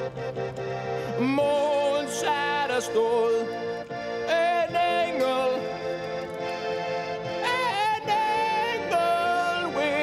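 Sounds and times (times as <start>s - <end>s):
sustained instrumental chord: 0.0s - 10.0s
person singing with vibrato: 1.1s - 3.6s, 4.3s - 5.8s, 7.4s - 10.0s.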